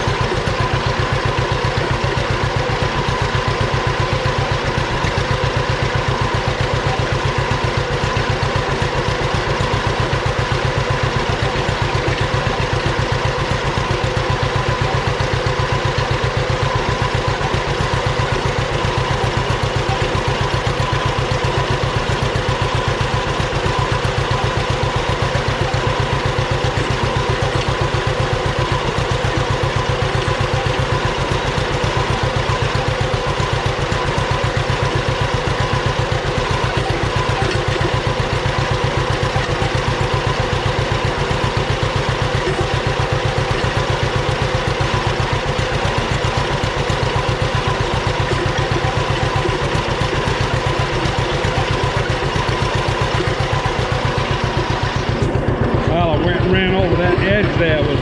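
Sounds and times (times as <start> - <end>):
tractor engine running: 0.0 - 58.0.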